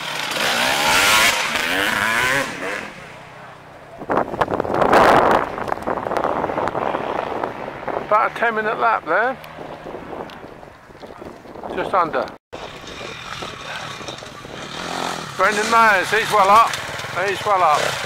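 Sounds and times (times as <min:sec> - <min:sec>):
motorcycle engine revving past: 0:00.0 - 0:03.3, 0:12.6 - 0:18.0.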